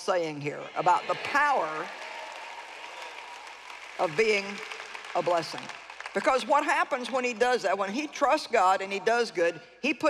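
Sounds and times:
audience applause: 0:00.8 - 0:07.4.

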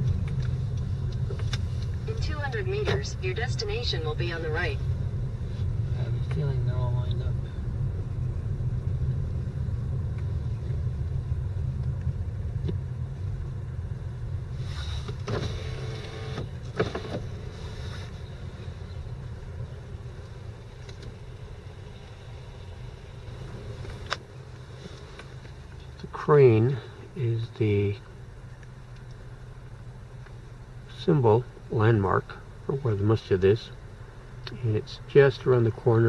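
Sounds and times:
road and engine rumble in car: 0:00.0 - 0:36.0.

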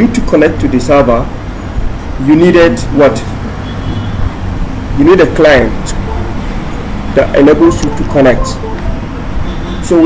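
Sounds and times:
person speaking: 0:07.2 - 0:09.1.

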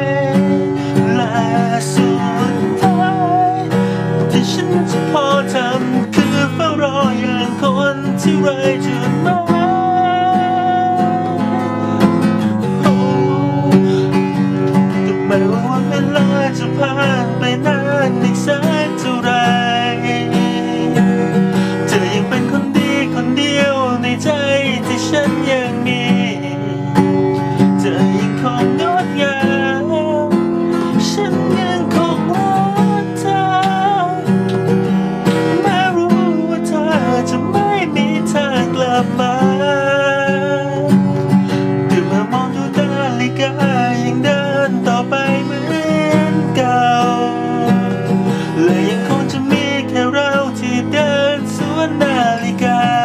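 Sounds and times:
acoustic guitar strumming: 0:00.0 - 0:53.0
man singing a slow ballad: 0:00.0 - 0:53.0.

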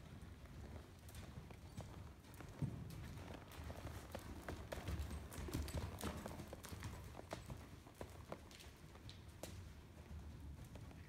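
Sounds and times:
horse hoofbeats on soft dirt: 0:00.0 - 0:11.0.

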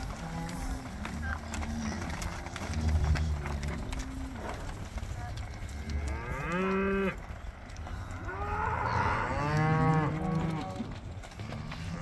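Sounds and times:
cattle mooing: 0:00.0 - 0:07.3, 0:08.1 - 0:12.0.

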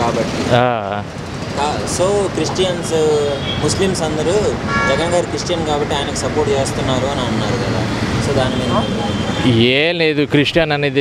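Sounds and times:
man talking: 0:00.0 - 0:11.0
street traffic: 0:00.0 - 0:11.0
vehicle horn toot: 0:03.3 - 0:03.8, 0:04.7 - 0:05.4, 0:08.4 - 0:09.6.

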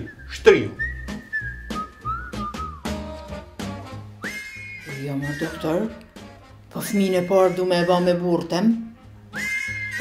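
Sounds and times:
person whistling a tune: 0:00.0 - 0:03.3, 0:04.1 - 0:05.9, 0:09.3 - 0:10.0
background music with beat: 0:00.0 - 0:07.6, 0:08.9 - 0:10.0.

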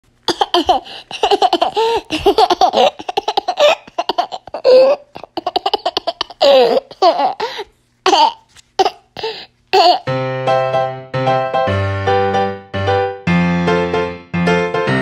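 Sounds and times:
young child laughing: 0:00.3 - 0:10.1.

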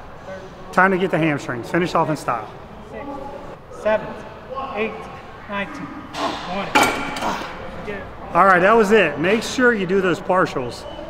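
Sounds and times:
metal weight clanking: 0:06.2 - 0:07.5.

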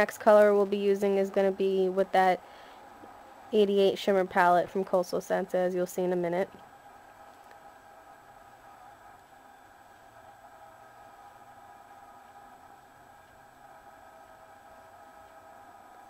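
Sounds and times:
faint steady background hum: 0:00.0 - 0:16.0.

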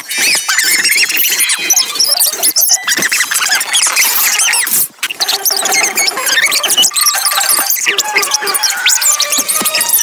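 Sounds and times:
sped-up cartoon squeaky chatter: 0:00.0 - 0:10.0.

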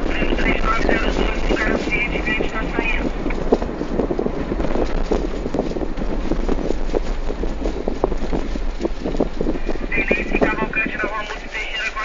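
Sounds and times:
car road noise rumbling: 0:00.0 - 0:12.0.

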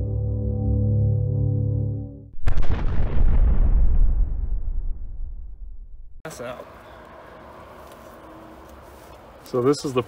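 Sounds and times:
ambient music drone: 0:00.0 - 0:02.2
cinematic boom with low rumble: 0:02.4 - 0:06.2.

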